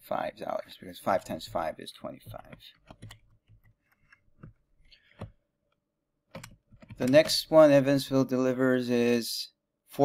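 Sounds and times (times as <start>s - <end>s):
computer keyboard keystrokes: 2.3s - 5.4s, 6.3s - 7.4s.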